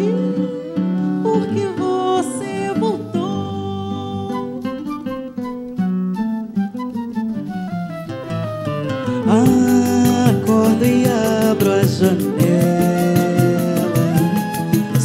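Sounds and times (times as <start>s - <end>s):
flute melody: 0.0s - 15.0s
guitar and cavaquinho strumming: 0.0s - 15.0s
samba ensemble playing: 8.2s - 15.0s.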